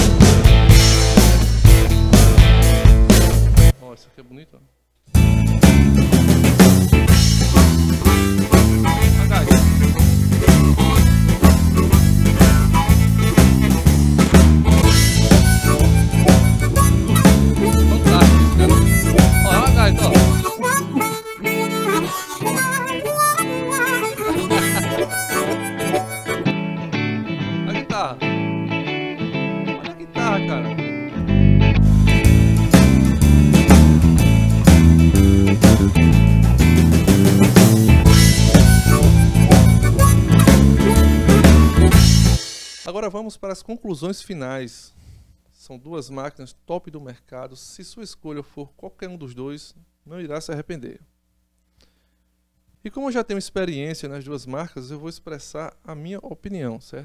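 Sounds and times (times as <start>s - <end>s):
blues band accompaniment: 0.0s - 3.7s, 5.2s - 42.8s
harmonica voice on keyboard: 8.0s - 13.9s, 14.8s - 26.7s, 38.0s - 42.3s.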